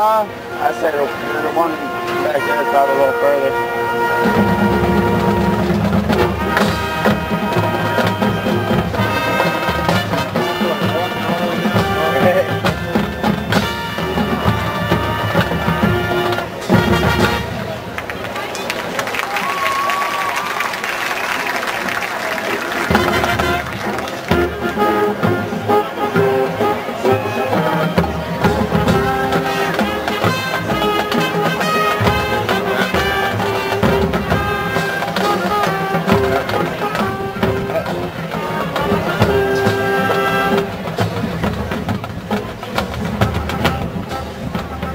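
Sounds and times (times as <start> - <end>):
brass chords: 0.0 - 18.7, 22.6 - 44.9
marching drums: 1.5 - 18.6, 19.4 - 44.9.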